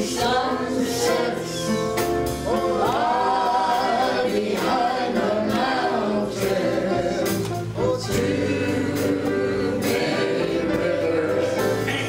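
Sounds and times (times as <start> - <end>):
man and woman singing gospel: 0.0 - 12.0
other voices singing: 0.0 - 12.0.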